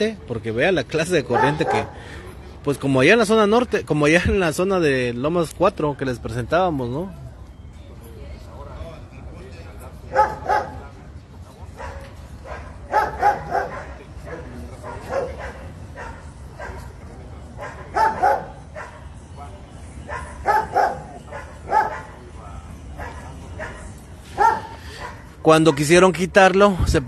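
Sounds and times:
dog barking: 0:01.3 - 0:01.9, 0:10.1 - 0:10.9, 0:11.8 - 0:17.0, 0:17.6 - 0:19.2, 0:20.0 - 0:22.2, 0:23.0 - 0:25.9.

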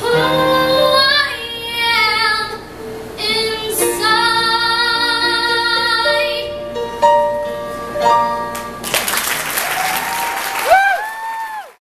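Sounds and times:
girl singing a slow ballad: 0:00.0 - 0:06.7.

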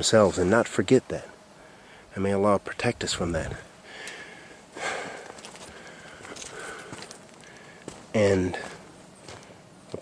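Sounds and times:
footsteps on rocky dirt: 0:05.0 - 0:10.0.

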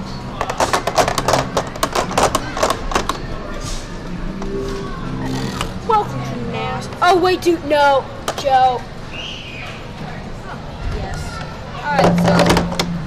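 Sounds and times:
low steady tones: 0:01.1 - 0:09.2.

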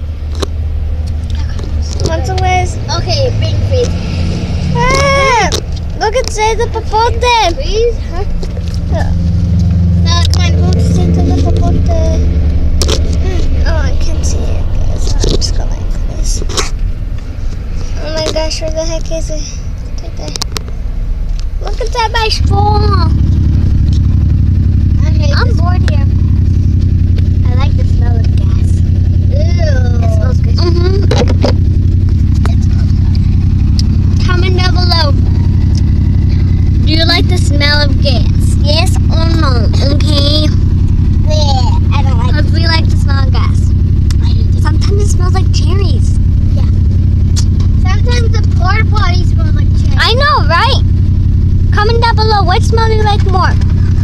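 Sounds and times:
car rumble from inside cabin: 0:00.0 - 0:54.0
children talking: 0:01.3 - 0:16.8, 0:17.8 - 0:20.5, 0:21.6 - 0:54.0.

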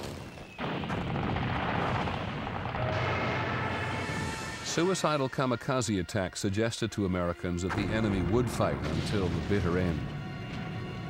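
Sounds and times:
explosions: 0:00.0 - 0:04.8, 0:07.8 - 0:10.0
anti-aircraft gunfire: 0:00.6 - 0:04.6.

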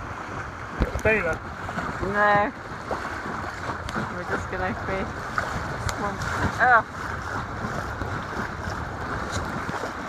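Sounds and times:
water rushing along a boat hull: 0:00.0 - 0:10.0
wind buffeting microphone: 0:00.0 - 0:10.0.

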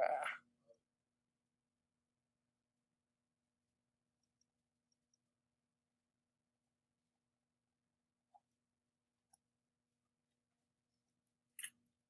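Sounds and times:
brief vocal murmur: 0:00.0 - 0:00.4.

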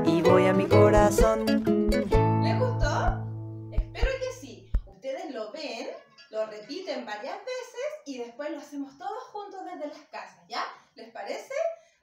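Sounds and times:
acoustic guitar chord ringing: 0:00.0 - 0:03.8
light beats: 0:00.7 - 0:05.0.

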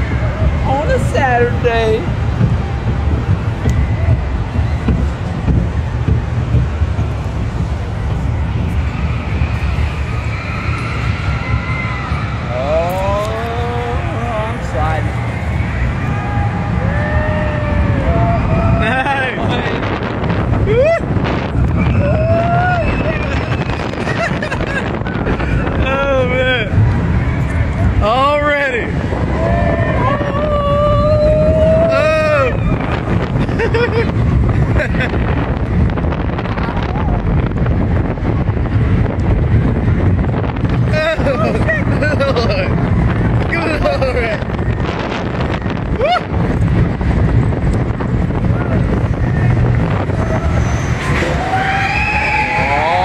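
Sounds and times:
roller coaster rumbling on track: 0:00.0 - 0:53.0
wind on microphone: 0:00.0 - 0:53.0
riders crying out: 0:48.5 - 0:53.0.

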